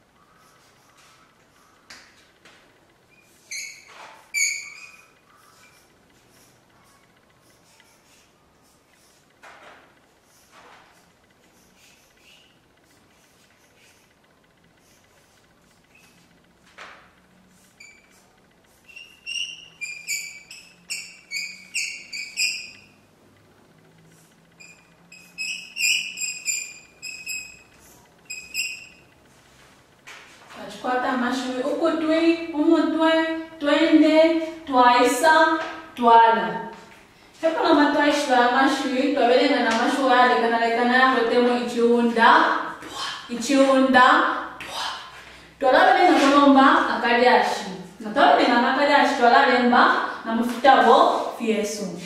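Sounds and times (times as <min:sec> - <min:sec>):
chalk squeaking on blackboard: 0:00.3 - 0:01.7, 0:03.1 - 0:09.2, 0:10.3 - 0:14.1, 0:14.8 - 0:16.2, 0:17.5 - 0:22.9, 0:24.6 - 0:29.0.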